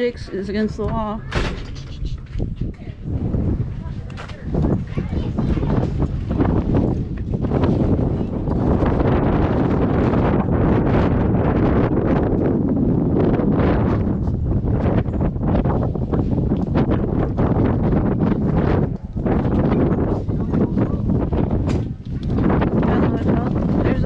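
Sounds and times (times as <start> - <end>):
wind on microphone: 0.0 - 24.0.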